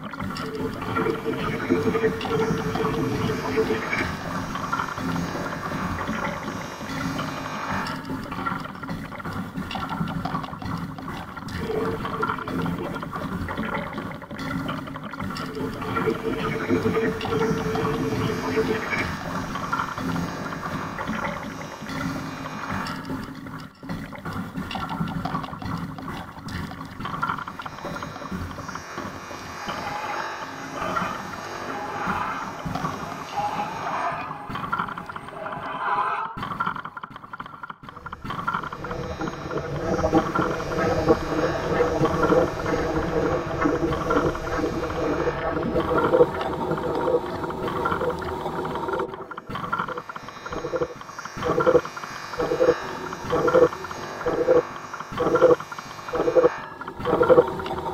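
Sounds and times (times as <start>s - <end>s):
experimental noise music: 0.0s - 57.9s.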